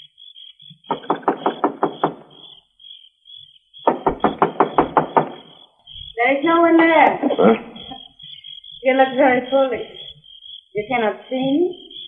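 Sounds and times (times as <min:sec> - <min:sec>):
knocking on a door: 0:00.9 - 0:02.4, 0:03.9 - 0:05.6.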